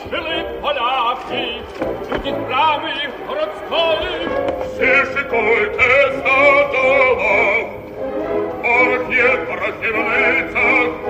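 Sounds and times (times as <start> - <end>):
operatic voice singing: 0.0 - 11.0
orchestral accompaniment: 0.0 - 11.0.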